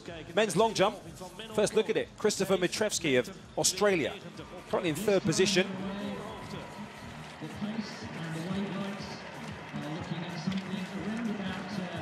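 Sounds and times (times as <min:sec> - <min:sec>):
murmur of distant voices: 0:03.1 - 0:12.0.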